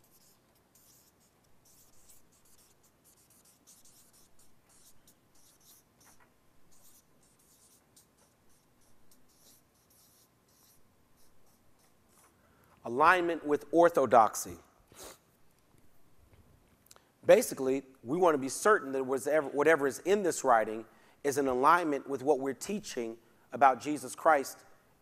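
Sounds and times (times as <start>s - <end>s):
pens scratching on paper: 0.0s - 12.4s.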